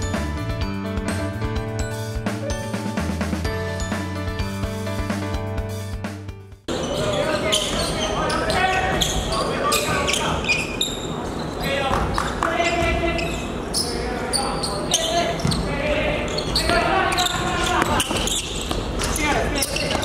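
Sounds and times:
music track: 0.0s - 6.6s
players calling out: 6.7s - 20.0s
basketballs bouncing on gym floor: 11.8s - 13.6s, 15.0s - 20.0s.

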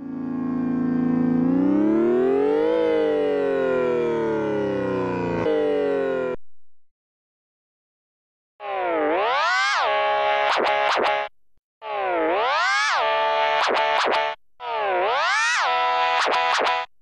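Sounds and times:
synthesized organ note: 0.0s - 6.4s.

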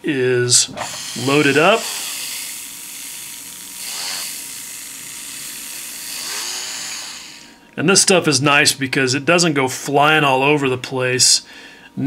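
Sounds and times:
rotary tool buffing wheel hiss: 0.6s - 7.6s.

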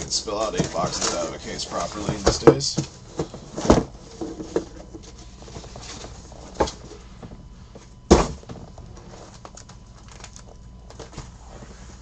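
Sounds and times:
handling rustle: 0.0s - 12.0s.

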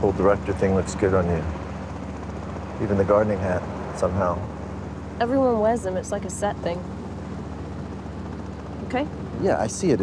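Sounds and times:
person speaking a word: 0.0s - 1.5s, 2.8s - 4.4s, 9.4s - 10.0s
steady low drone: 0.0s - 10.0s.

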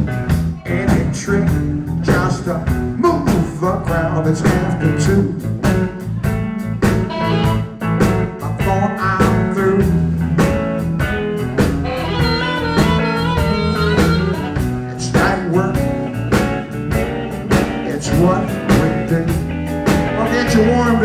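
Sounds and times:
bass: 0.0s - 21.0s
drums: 0.0s - 21.0s
electric guitar: 0.0s - 21.0s.

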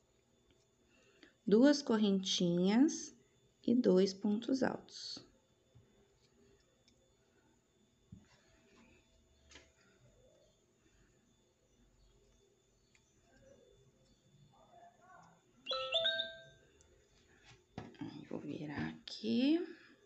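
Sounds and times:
two-note electronic chime: 15.7s - 16.5s.

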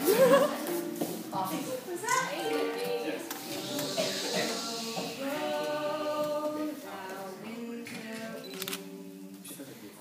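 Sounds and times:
mandolin: 0.0s - 6.6s
people singing: 2.1s - 9.8s.

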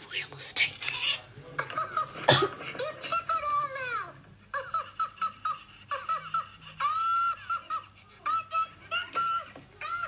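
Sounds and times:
toy electronic voice laughing: 1.0s - 10.0s.

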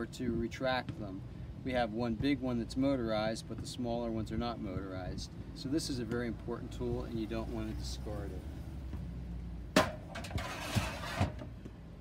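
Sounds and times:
pole scraping slide: 10.0s - 11.5s.

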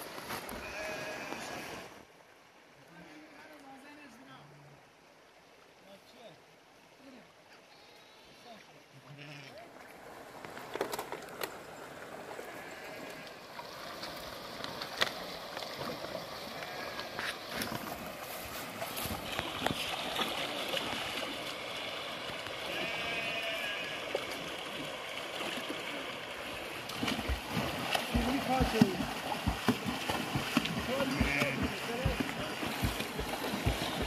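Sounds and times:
river water running over rocks: 0.0s - 7.7s, 8.4s - 34.0s
swimmers splashing: 11.8s - 34.0s.

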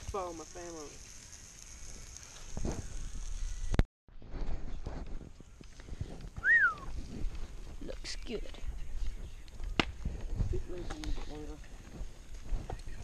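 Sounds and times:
meat sizzling in frying pan: 0.0s - 3.8s
short whistled note: 6.4s - 6.9s.

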